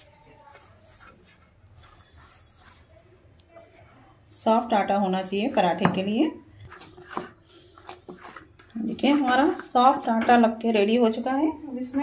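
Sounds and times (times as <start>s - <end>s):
hands kneading dough: 0.0s - 12.0s.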